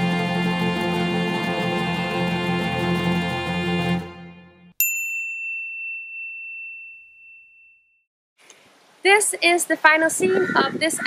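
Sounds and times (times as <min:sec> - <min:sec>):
background music: 0:00.0 - 0:04.8.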